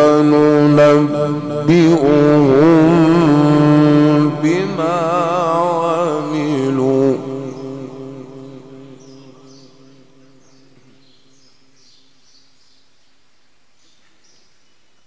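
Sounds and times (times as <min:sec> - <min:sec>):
person reciting through loudspeakers: 0:00.0 - 0:11.0
small birds chirping: 0:07.1 - 0:15.0.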